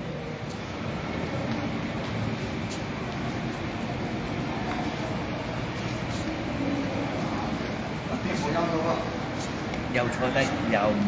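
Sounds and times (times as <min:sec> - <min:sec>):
rumbling mall background noise: 0:00.0 - 0:11.0.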